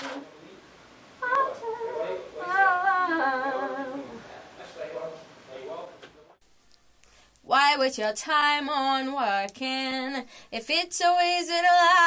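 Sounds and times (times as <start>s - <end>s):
woman humming: 1.2s - 4.2s.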